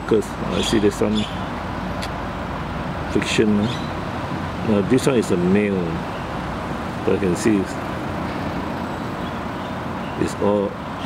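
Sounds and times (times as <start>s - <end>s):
low rumble with hiss: 0.0s - 9.4s.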